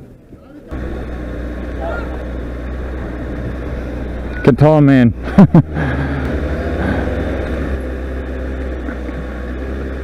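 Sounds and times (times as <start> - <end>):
road noise: 0.0 - 10.0
motorcycle engine running: 0.1 - 10.0.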